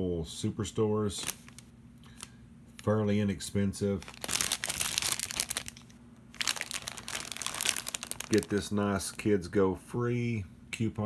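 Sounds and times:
plastic bag crinkling: 0:01.2 - 0:03.0, 0:03.9 - 0:09.3.

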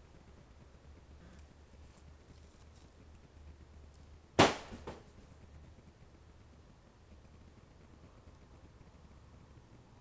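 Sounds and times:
faint low background noise: 0:00.0 - 0:10.0
sharp knock: 0:04.4 - 0:05.0.

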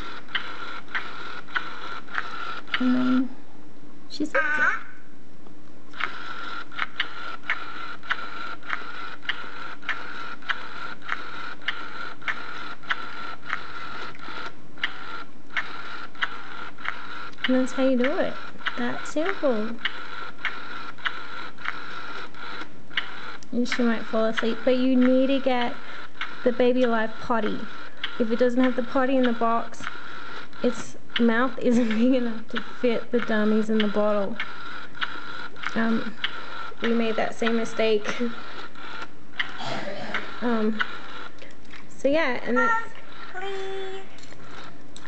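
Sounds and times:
sharp mechanical clicks: 0:00.0 - 0:03.3, 0:05.9 - 0:45.0
toy mechanism whining: 0:00.0 - 0:03.4, 0:05.9 - 0:45.0
small motor whirring: 0:00.0 - 0:03.5, 0:05.9 - 0:45.0.

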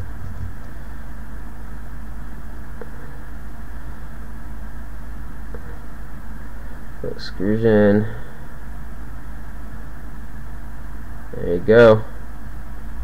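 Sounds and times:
low hum and hiss: 0:00.0 - 0:13.0.

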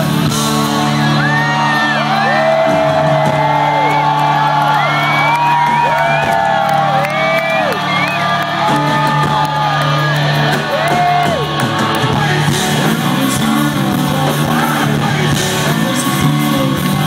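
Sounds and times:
drums: 0:00.0 - 0:17.0
live rock band playing: 0:00.0 - 0:17.0.

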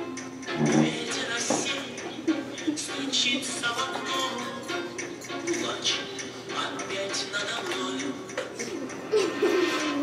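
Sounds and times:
recorded music: 0:00.0 - 0:10.0.

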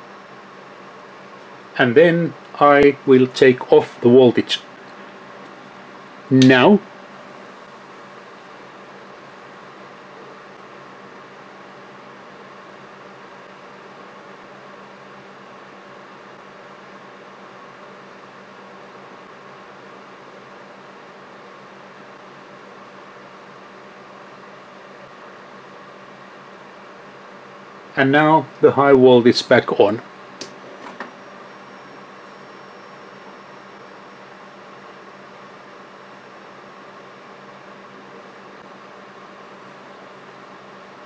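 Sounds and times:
equipment hum and hiss: 0:00.0 - 0:41.0.

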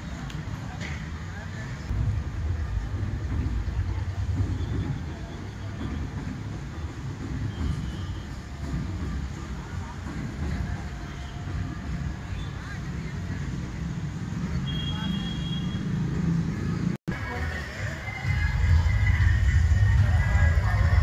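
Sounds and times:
faint distant voices: 0:00.0 - 0:21.0.

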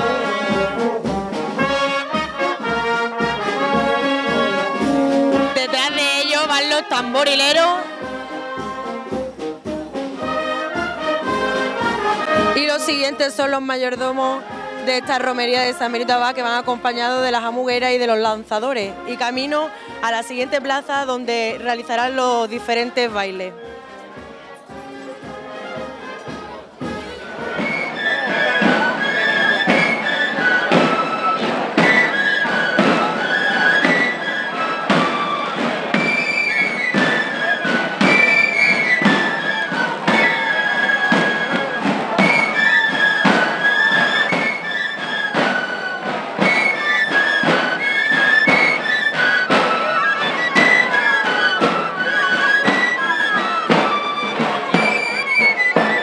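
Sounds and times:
steady drumbeats: 0:00.0 - 0:56.0
high pipe melody: 0:01.7 - 0:09.2.

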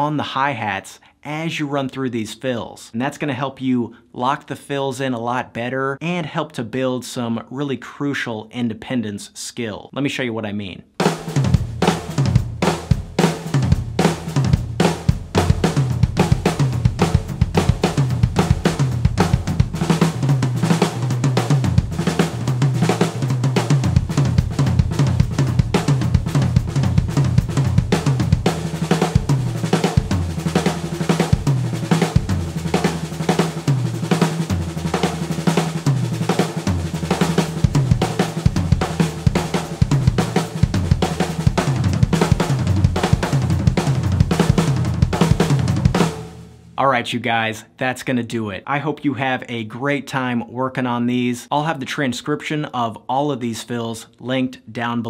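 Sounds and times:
drum fills on snare and toms: 0:11.0 - 0:46.3
cymbals and hi-hat: 0:11.0 - 0:46.8.

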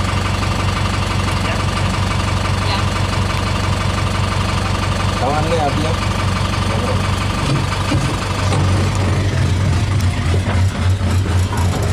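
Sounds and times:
engine idling: 0:00.0 - 0:11.9.

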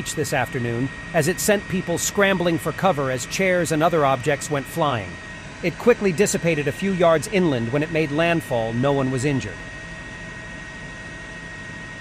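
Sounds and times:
helicopter engine and rotor: 0:00.0 - 0:12.0
thin high whine: 0:00.0 - 0:12.0.

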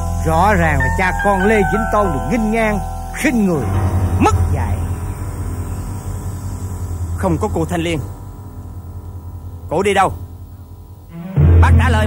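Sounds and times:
background hiss: 0:00.0 - 0:12.0
steady low hum: 0:00.0 - 0:12.0.

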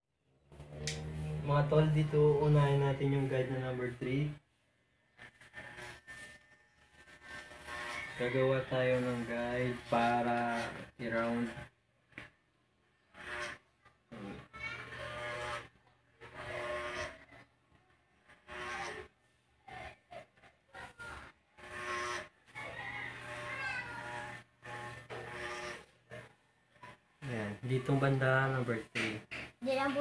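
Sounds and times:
electric hair clipper buzzing: 0:00.6 - 0:04.0, 0:05.2 - 0:11.7, 0:13.1 - 0:13.6, 0:14.2 - 0:17.3, 0:18.3 - 0:19.2, 0:21.2 - 0:26.2.

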